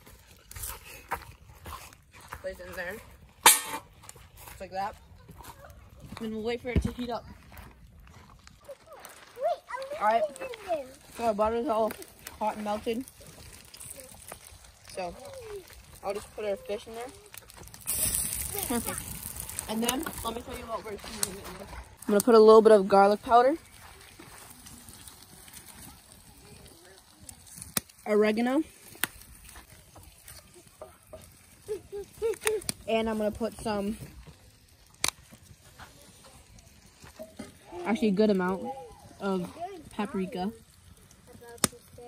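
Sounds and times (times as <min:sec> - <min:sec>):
fish sizzling in butter: 0:10.0 - 0:42.0.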